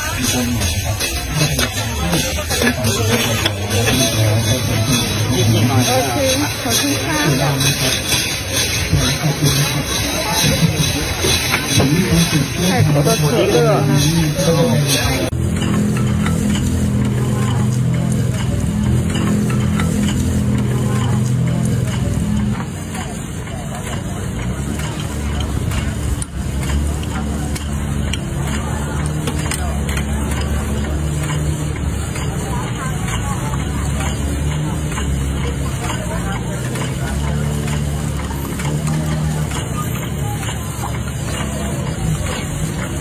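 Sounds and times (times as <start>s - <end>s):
machine humming: 0.0s - 23.6s
people talking: 0.0s - 43.0s.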